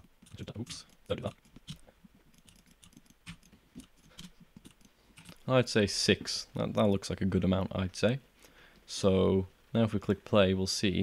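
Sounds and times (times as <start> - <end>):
keyboard and mouse clicks: 0.0 - 5.4.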